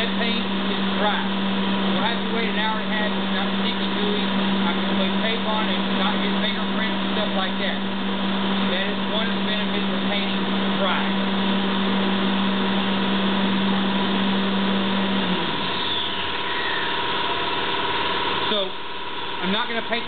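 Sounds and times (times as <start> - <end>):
electric motor hum: 0.0 - 20.0.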